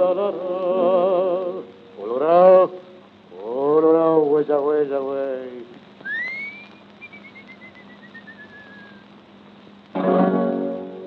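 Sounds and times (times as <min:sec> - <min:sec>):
record hiss: 0:00.0 - 0:11.0
person whistling: 0:06.1 - 0:09.0.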